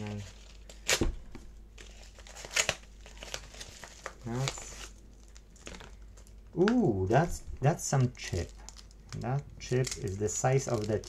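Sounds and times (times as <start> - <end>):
packaging crinkling: 0.0 - 11.0
packaging being torn open: 1.8 - 6.8, 7.9 - 11.0.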